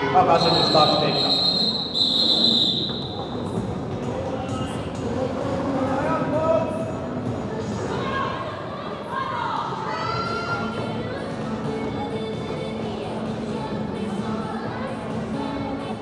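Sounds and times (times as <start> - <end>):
referee whistle blast: 0.4 - 3.2.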